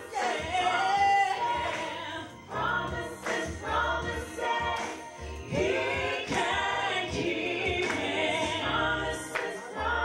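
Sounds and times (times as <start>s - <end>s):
instrumental backing with bass: 0.0s - 10.0s
woman singing gospel song: 0.0s - 10.0s.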